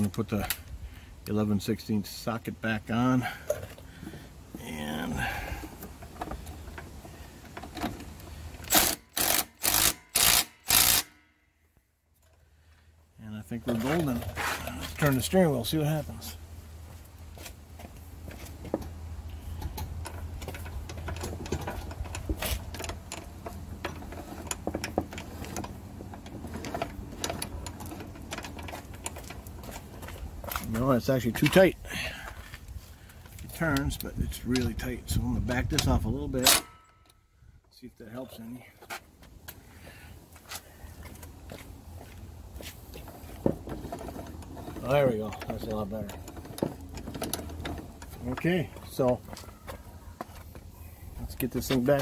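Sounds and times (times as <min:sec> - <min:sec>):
steering gear clicks and ticks: 0:19.6 - 0:31.6, 0:43.7 - 0:49.8.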